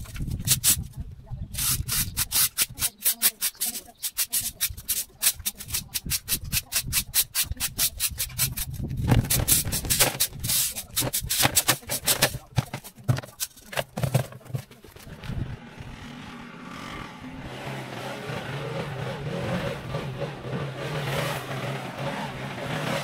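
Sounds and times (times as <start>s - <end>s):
rake scraping on concrete: 0.0s - 0.9s, 1.5s - 17.0s.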